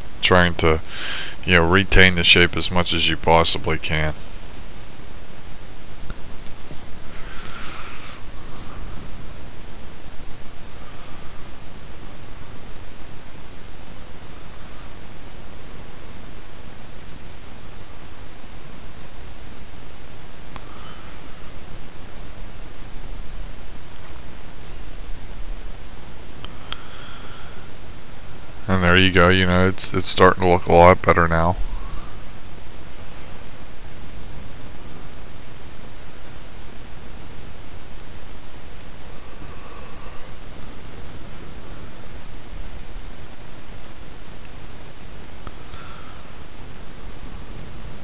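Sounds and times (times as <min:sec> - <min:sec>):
faint soft sounds: 0:00.0 - 0:28.7
microphone hiss: 0:00.0 - 0:48.0.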